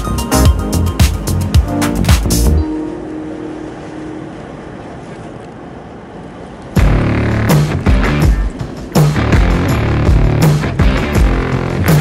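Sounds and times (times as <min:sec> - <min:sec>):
music: 0:00.0 - 0:04.3, 0:06.8 - 0:12.0
road and wind noise: 0:00.0 - 0:12.0.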